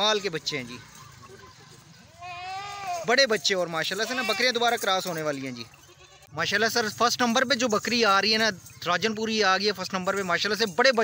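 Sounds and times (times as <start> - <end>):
goat bleating: 2.2 - 3.1, 3.9 - 4.9, 5.6 - 6.3.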